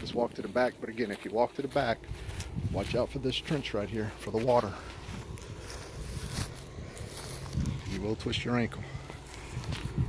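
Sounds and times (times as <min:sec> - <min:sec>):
footsteps on grass: 0:00.0 - 0:10.0
microphone handling rumble: 0:02.0 - 0:03.6, 0:04.2 - 0:10.0.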